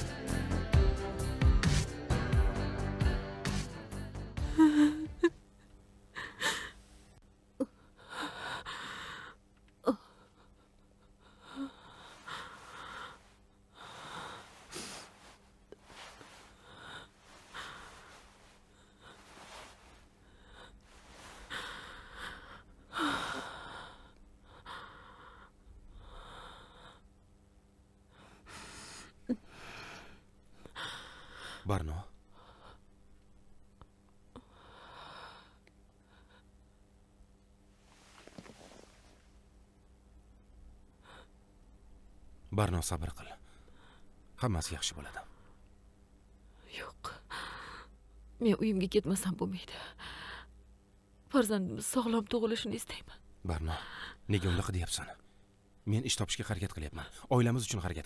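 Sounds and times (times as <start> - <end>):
low room hum: 2.5 - 58.0
woman breathing heavily: 6.1 - 27.1, 28.1 - 33.0, 34.3 - 36.8, 37.8 - 39.3, 47.1 - 48.0, 49.7 - 50.6, 53.7 - 54.7.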